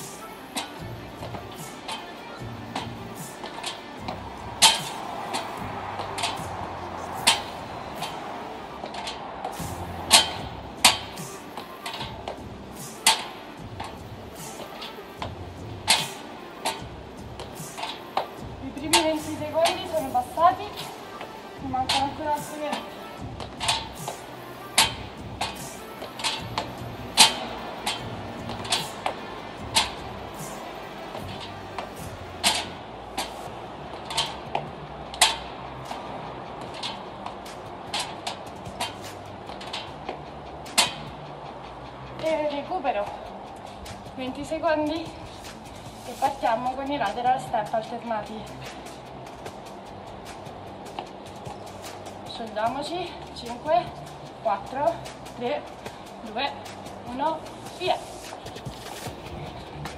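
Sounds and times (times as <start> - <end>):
background music: 0.0 - 59.9.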